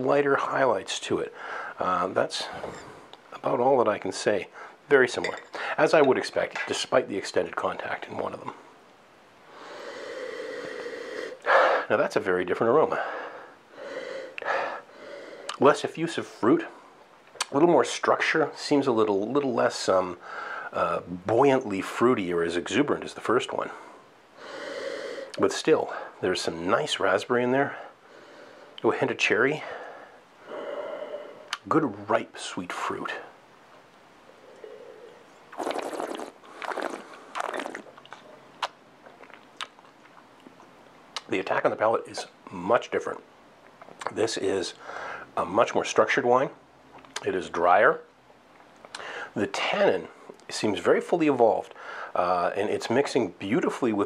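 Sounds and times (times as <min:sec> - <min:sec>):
person sniffing through nose: 0:09.6 - 0:11.9, 0:24.4 - 0:25.4, 0:34.6 - 0:37.8
mouth clicks: 0:31.4 - 0:31.7, 0:34.4 - 0:41.3
person slurping wine: 0:34.4 - 0:38.3.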